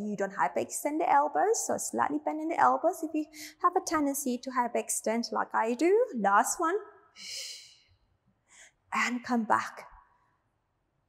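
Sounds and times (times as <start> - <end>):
faint breath: 3.3 - 3.6, 8.4 - 8.8.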